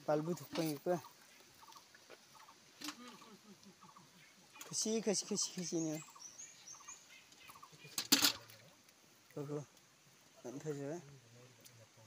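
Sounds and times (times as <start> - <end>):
bird chirping: 0.1 - 8.7
soft small ticks: 8.4 - 11.8.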